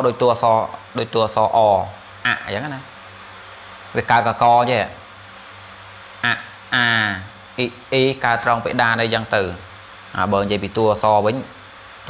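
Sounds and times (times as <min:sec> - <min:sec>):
man speaking: 0:00.0 - 0:02.9, 0:04.0 - 0:05.0, 0:06.2 - 0:11.6
low steady hum: 0:00.0 - 0:12.0.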